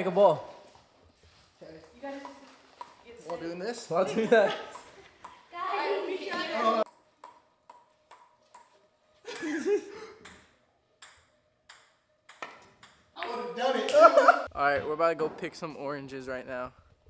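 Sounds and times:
ping-pong ball bouncing on paddle: 0:01.8 - 0:03.5, 0:04.7 - 0:05.5, 0:06.9 - 0:09.6, 0:10.2 - 0:13.4.

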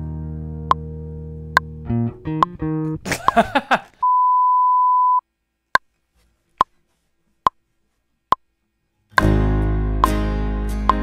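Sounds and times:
piano bass and guitar music: 0:00.0 - 0:03.1, 0:09.1 - 0:11.0
metronome clicks: 0:02.3 - 0:03.4
reference tone: 0:04.0 - 0:05.2.

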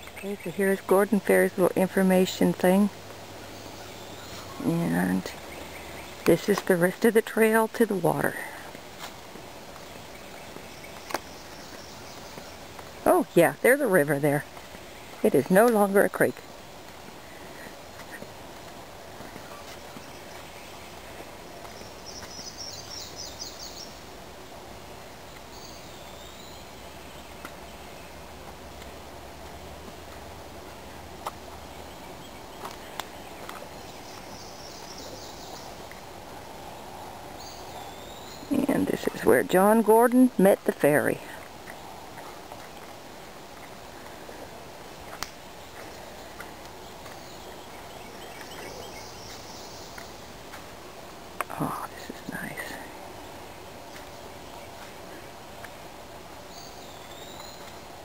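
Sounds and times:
steady outdoor hiss: 0:00.0 - 0:58.0.

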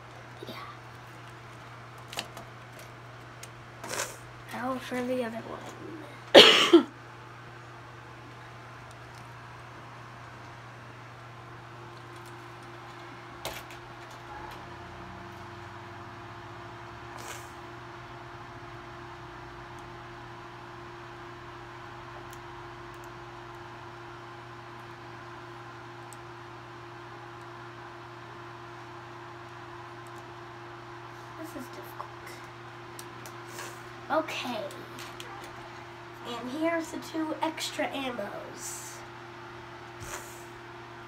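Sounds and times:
low machine hum: 0:00.0 - 0:41.0.

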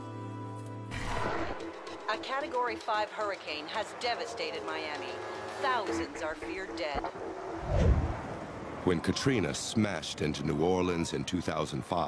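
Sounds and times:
wind gusting against microphone: 0:06.9 - 0:10.5.

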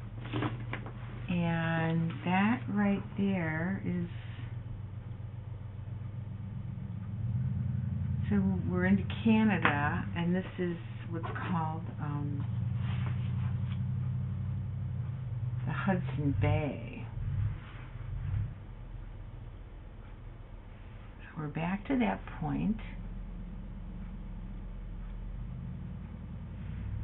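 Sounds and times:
steady low motor hum: 0:00.0 - 0:27.0.

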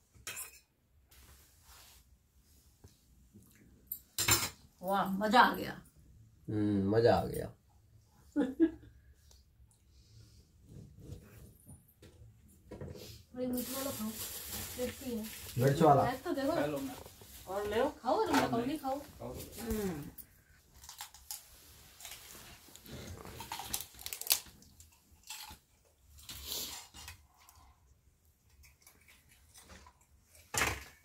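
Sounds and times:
people eating crisp food: 0:13.8 - 0:31.0.

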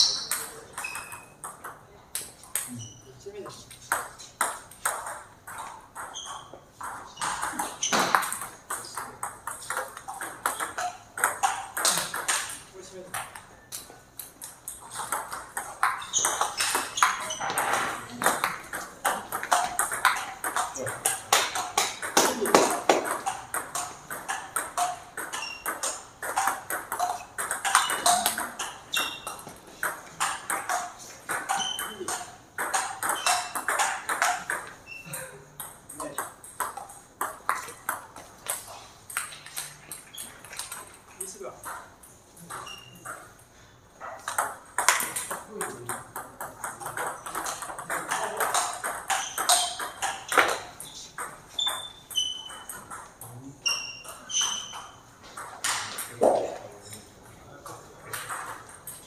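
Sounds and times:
table tennis ball clicking: 0:03.9 - 0:35.0.

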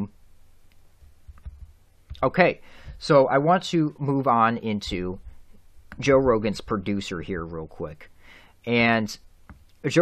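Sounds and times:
low bumps: 0:01.0 - 0:03.2.

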